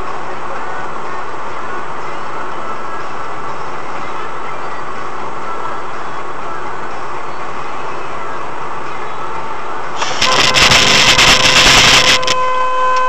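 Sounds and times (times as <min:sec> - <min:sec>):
car road and tyre noise: 0:00.0 - 0:13.0
harsh crackling noise: 0:10.0 - 0:12.4.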